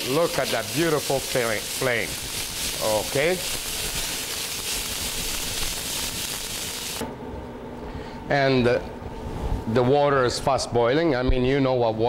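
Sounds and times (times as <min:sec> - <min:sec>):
food sizzling in frying pan: 0:00.0 - 0:07.0.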